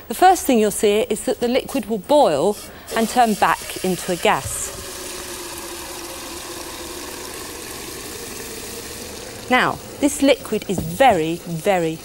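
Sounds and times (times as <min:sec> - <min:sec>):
boiling hiss: 0:02.3 - 0:12.0
liquid nitrogen pouring: 0:02.9 - 0:12.0.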